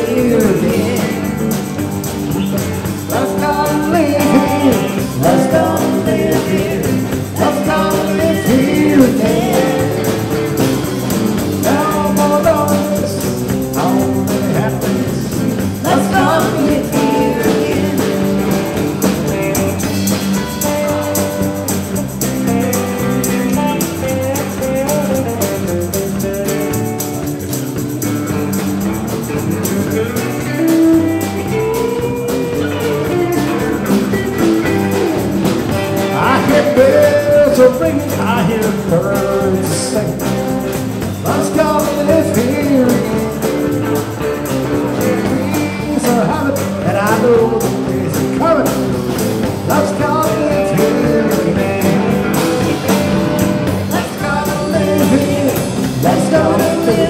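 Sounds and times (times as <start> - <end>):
bass guitar: 0.0 - 57.0
drums: 0.0 - 57.0
electric guitars: 0.0 - 57.0
keyboard: 0.0 - 57.0.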